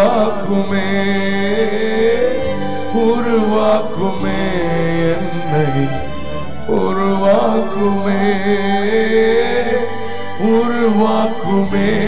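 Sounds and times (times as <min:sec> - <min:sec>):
person singing chant-like song: 0:00.0 - 0:12.0
sustained instrumental accompaniment: 0:00.0 - 0:12.0.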